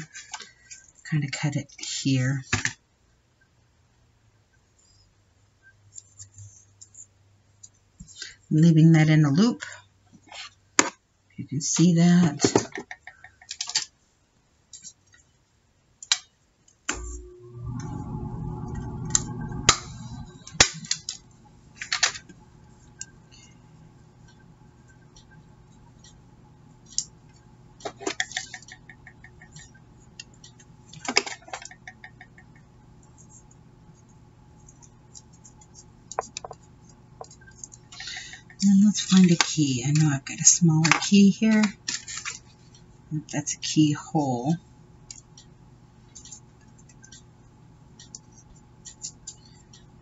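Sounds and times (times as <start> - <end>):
low steady hum: 16.8 - 50.0
paper rustling and tapping: 34.7 - 37.8.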